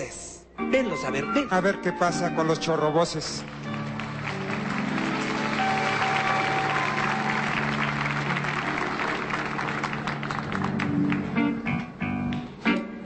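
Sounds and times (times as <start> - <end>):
audience applauding: 3.1 - 11.6.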